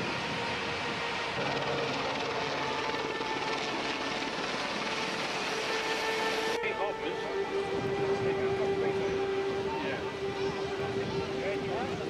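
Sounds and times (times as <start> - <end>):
rushing noise: 0.0 - 12.0
steady engine drone: 0.0 - 12.0.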